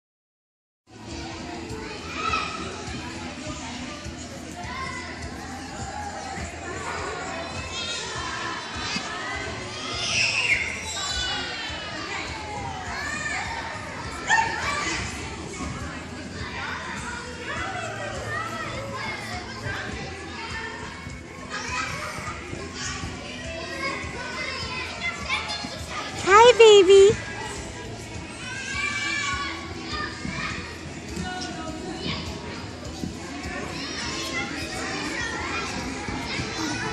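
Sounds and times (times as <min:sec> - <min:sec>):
children playing: 0:00.9 - 0:36.9
high child's voice: 0:26.2 - 0:27.2
people talking: 0:26.2 - 0:27.2.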